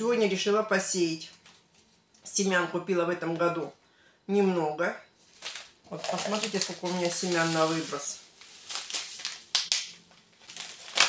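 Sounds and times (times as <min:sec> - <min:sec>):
paper packets rustling: 0:05.2 - 0:11.0.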